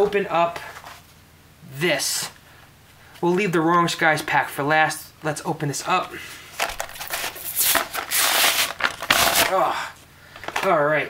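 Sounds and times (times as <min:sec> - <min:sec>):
plastic blister pack crackling: 0:06.5 - 0:10.8.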